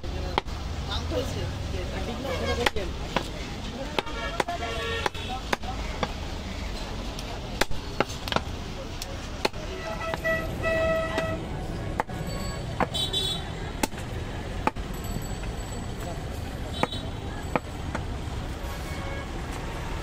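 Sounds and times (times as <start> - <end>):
street traffic noise: 0.0 - 20.0
cleaver chopping through meat: 3.9 - 6.2.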